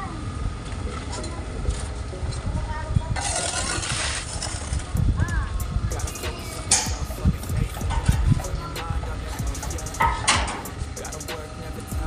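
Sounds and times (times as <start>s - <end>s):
faint music: 0.0s - 12.0s
trowel scraping plaster: 3.2s - 4.9s
low thumps: 4.8s - 10.8s.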